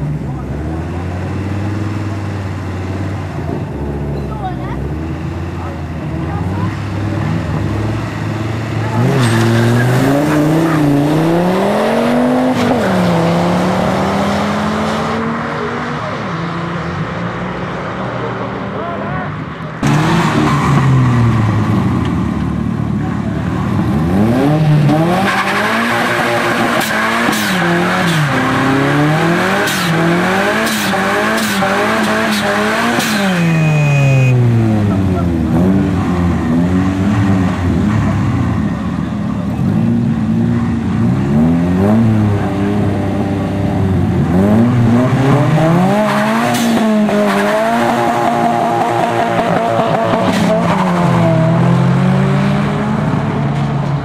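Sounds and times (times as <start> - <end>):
car engine revving: 0.0 - 54.0
tyres squealing on asphalt: 6.4 - 11.2, 25.0 - 36.6.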